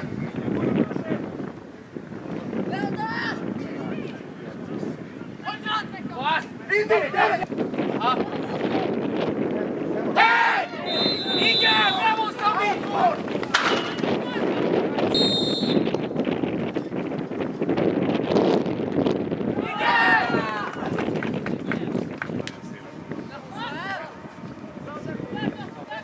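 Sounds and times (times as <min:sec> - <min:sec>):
wind noise on microphone: 0:00.0 - 0:26.0
players shouting: 0:10.1 - 0:14.6, 0:19.5 - 0:20.9
referee's whistle blasts: 0:10.8 - 0:12.2, 0:15.1 - 0:15.9.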